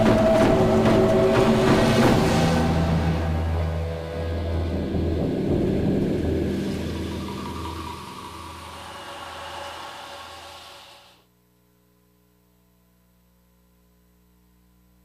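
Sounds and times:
soundtrack music with deep low note: 0.0s - 10.2s.

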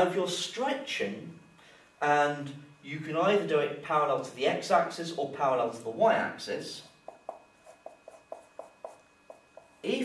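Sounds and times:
marker pen writing on whiteboard: 7.0s - 9.9s.

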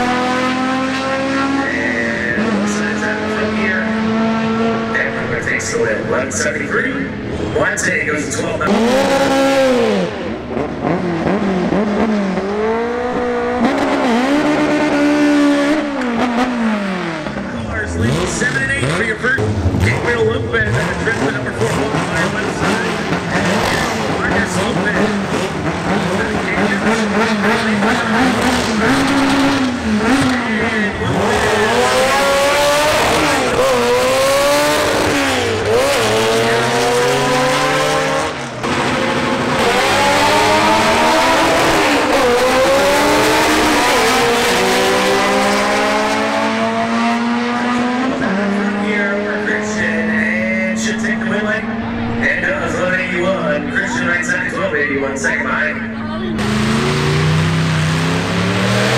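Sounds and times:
car engine revving and accelerating: 0.0s - 58.9s.

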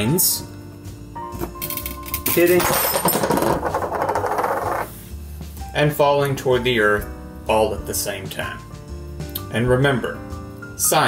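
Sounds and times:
coins clattering on tabletop: 1.5s - 4.9s.

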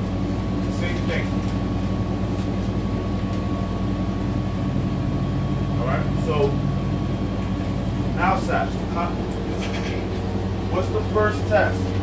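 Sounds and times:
bus engine droning: 0.0s - 12.0s
thin steady whine: 0.0s - 12.0s.

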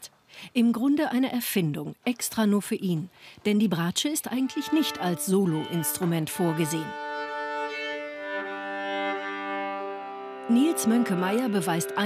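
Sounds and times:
viola playing slow bowed notes: 4.4s - 12.0s.

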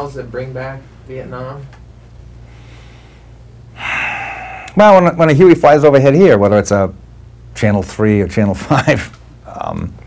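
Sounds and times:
low steady hum: 0.0s - 10.0s
man's quick intake of breath: 2.4s - 4.8s
man speaking: 4.7s - 7.0s.

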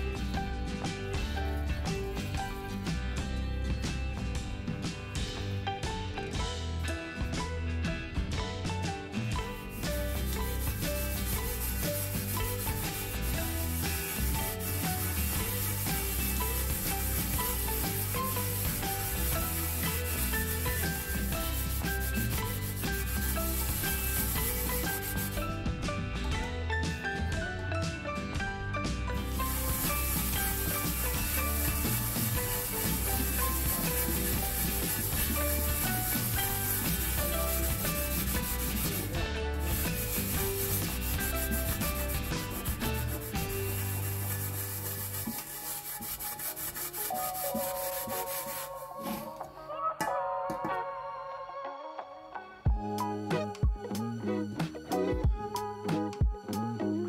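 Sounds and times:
background music: 0.0s - 57.0s
scouring pad scrubbing pot: 9.4s - 25.4s, 29.2s - 49.3s.

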